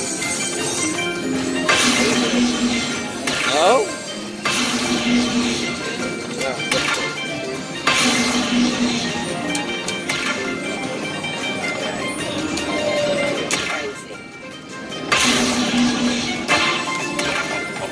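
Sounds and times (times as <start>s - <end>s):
slot machine music and effects: 0.0s - 17.9s.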